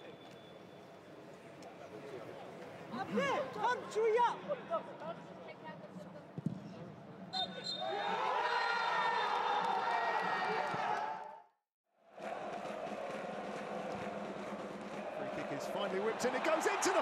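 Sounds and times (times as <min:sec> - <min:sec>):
large stadium crowd noise: 0:00.0 - 0:17.0
steady whistle: 0:07.3 - 0:08.0
men shouting and cheering: 0:12.2 - 0:17.0.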